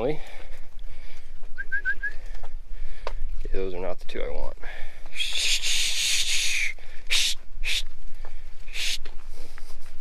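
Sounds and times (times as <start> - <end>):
bird calling: 5.1 - 8.0, 8.7 - 9.1.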